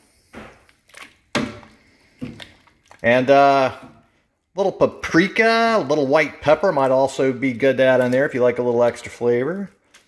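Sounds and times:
spoon stirring thick soup: 0:00.2 - 0:10.0.

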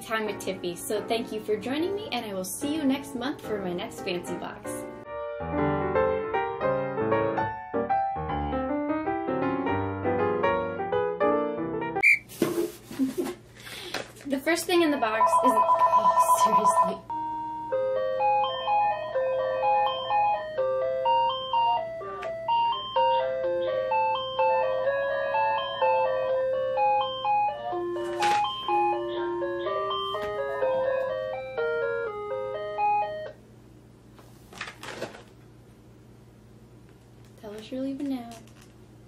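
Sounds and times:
electronic chiming melody: 0:14.9 - 0:33.3
plastic packaging rustle: 0:34.2 - 0:35.4.

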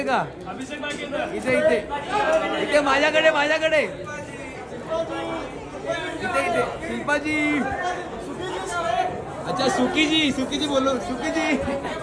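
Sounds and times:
people chattering and calling out: 0:00.0 - 0:12.0.

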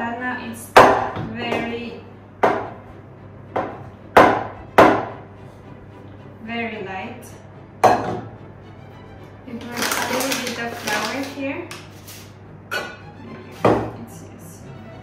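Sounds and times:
knocks on a steel mixing bowl: 0:00.8 - 0:01.7, 0:02.4 - 0:02.8, 0:03.5 - 0:05.2, 0:07.8 - 0:08.3.

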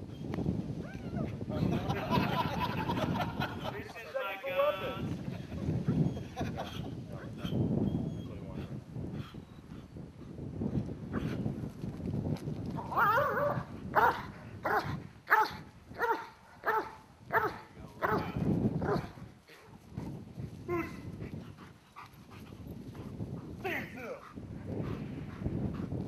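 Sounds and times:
dog barking: 0:13.2 - 0:19.1.

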